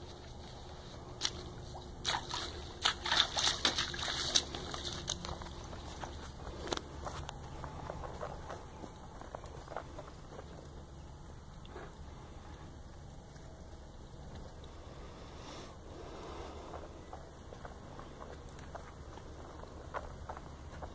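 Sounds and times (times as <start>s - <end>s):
hooves splashing through mud: 0.0s - 20.9s.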